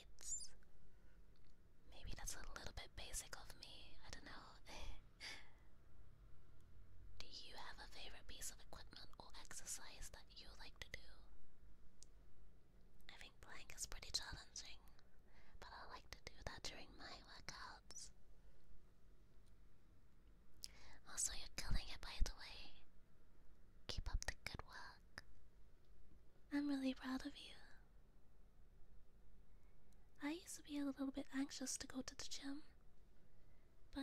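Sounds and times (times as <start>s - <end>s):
woman whispering: 0.0s - 0.6s, 1.9s - 5.5s, 7.2s - 11.3s, 13.1s - 18.2s, 20.6s - 22.8s, 23.9s - 25.3s, 26.5s - 27.8s, 30.2s - 32.8s.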